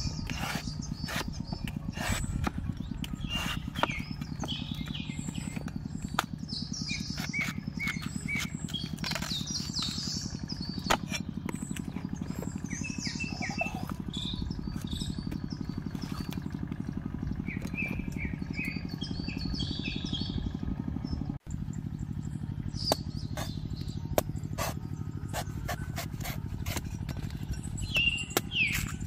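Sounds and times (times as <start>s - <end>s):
low motor-like hum: 0.0s - 29.0s
small birds chirping: 0.0s - 29.0s.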